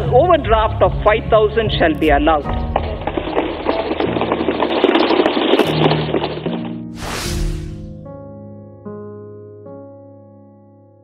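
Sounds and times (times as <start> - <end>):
low background music: 0.0 - 10.8.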